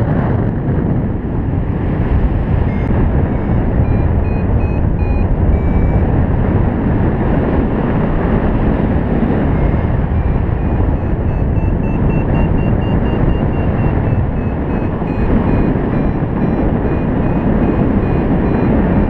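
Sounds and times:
wind rushing over microphone: 0.0 - 19.0
variometer beeping: 2.5 - 6.4, 8.3 - 19.0.

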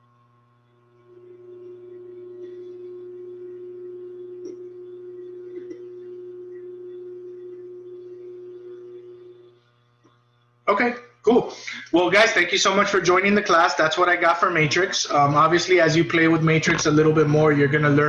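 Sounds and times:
steady tone: 1.1 - 13.4.

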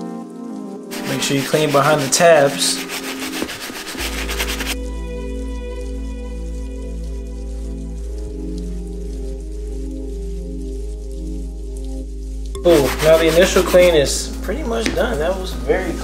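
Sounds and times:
brush scrubbing a shoe: 0.9 - 4.8, 12.7 - 14.3.

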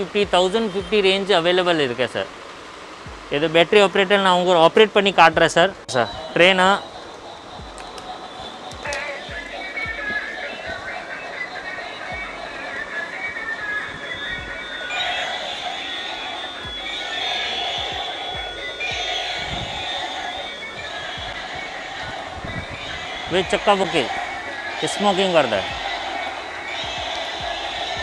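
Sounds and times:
toy train electronic tune: 0.0 - 1.8, 5.9 - 28.0.

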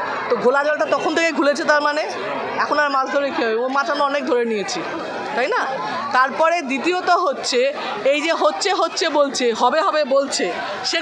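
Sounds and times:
voices chattering: 0.0 - 11.0
woman talking into microphones: 0.3 - 11.0.

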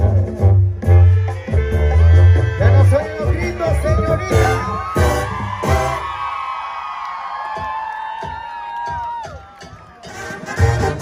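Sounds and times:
brass band with tuba and drums: 0.0 - 6.3, 10.0 - 11.0
crowd whooping: 4.0 - 10.8.

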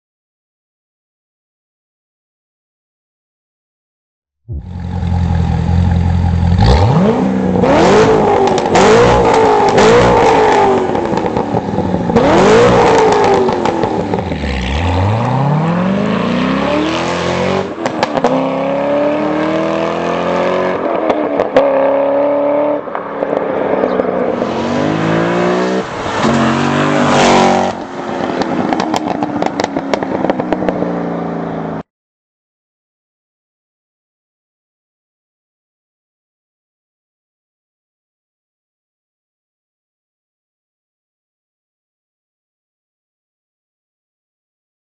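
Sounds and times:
car engine revving and accelerating: 4.6 - 30.8.

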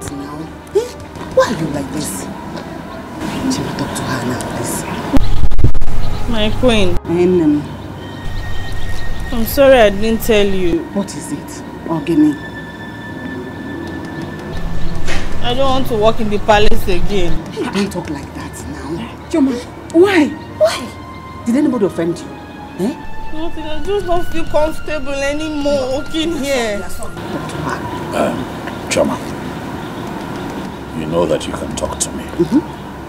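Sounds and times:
faint constant hum: 0.0 - 33.0
low drone: 0.0 - 33.0
steady rumbling noise: 1.2 - 12.6, 13.5 - 19.8.

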